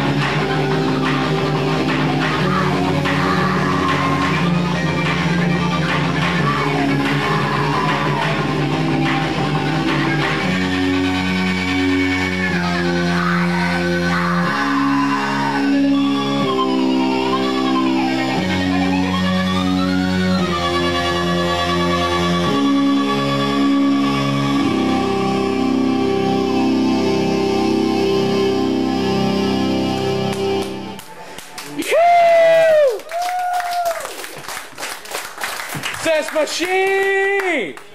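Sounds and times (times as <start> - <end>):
noise rock band playing: 0.0 - 25.9.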